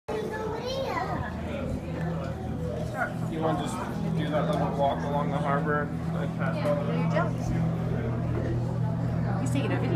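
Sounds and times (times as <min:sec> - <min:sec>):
indistinct chatter of voices: 0:00.1 - 0:09.9
steady low hum: 0:01.1 - 0:09.9.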